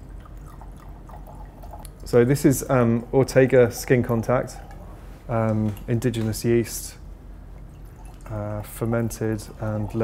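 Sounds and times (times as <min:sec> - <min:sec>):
wine pouring into a glass: 0:00.0 - 0:02.1, 0:07.6 - 0:08.7, 0:09.4 - 0:10.0.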